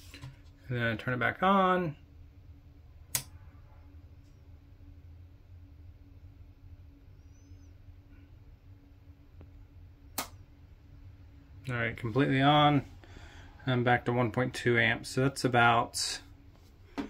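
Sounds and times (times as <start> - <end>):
faint steady low hum: 0.0 - 17.0
sharp switch click: 3.1 - 3.3, 10.2 - 10.4.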